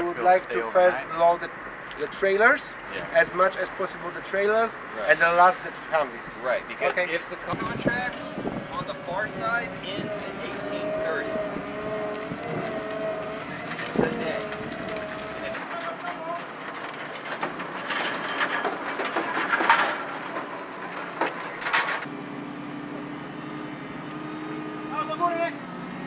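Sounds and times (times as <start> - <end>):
forklift engine running: 7.4 - 15.7, 20.2 - 26.0
metal clanks and knocks: 12.1 - 22.1.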